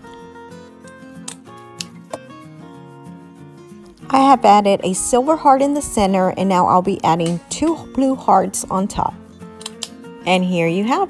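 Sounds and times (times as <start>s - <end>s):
soft background music: 0.0s - 11.0s
stapler clicks: 9.6s - 10.0s.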